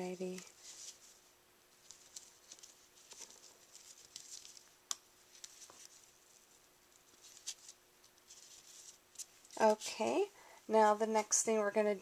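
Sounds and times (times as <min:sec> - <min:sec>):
ribbon and cardstock rustling: 0:00.0 - 0:10.3.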